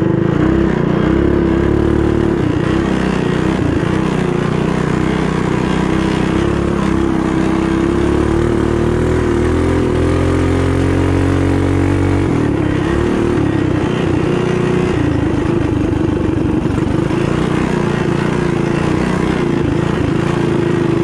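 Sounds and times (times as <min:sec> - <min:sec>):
mini bike engine racing: 0:00.0 - 0:21.0.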